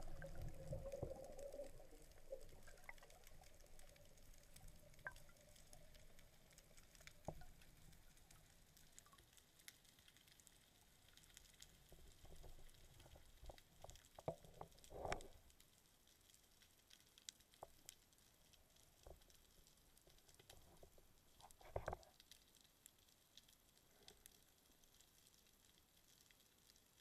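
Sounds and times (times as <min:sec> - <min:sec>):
underwater bubbles and rushing water: 0:00.0 - 0:27.0.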